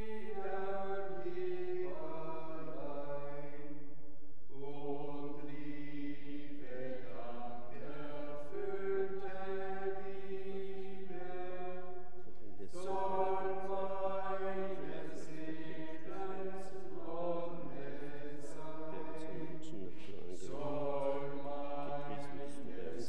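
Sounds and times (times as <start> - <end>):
slow church hymn music: 0.0 - 23.0.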